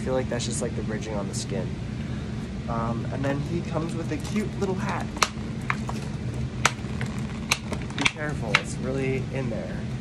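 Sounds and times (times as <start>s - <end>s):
steady low hum: 0.0s - 10.0s
sharp plastic clicks: 6.6s - 8.7s.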